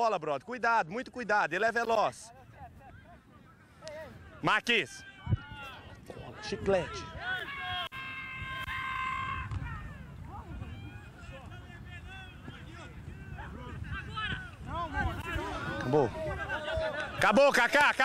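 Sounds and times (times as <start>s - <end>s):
distant shouting of players: 2.6s - 18.0s.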